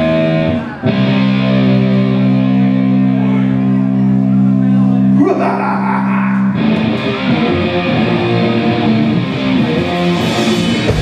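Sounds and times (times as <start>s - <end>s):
live rock band playing: 0.0s - 5.2s, 6.4s - 11.0s
held guitar chord with slide: 6.1s - 11.0s.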